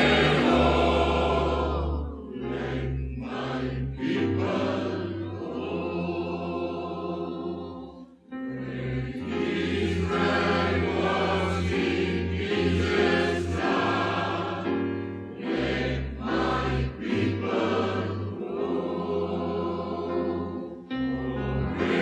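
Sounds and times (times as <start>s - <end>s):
choir singing: 0.0s - 22.0s
keyboard: 0.0s - 22.0s.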